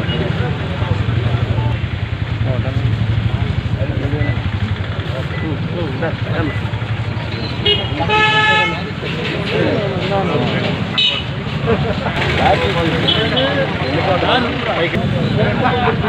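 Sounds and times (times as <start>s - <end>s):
crowd talking: 0.0s - 16.0s
vehicle engine idling: 0.0s - 16.0s
vehicle horn toot: 7.6s - 8.9s.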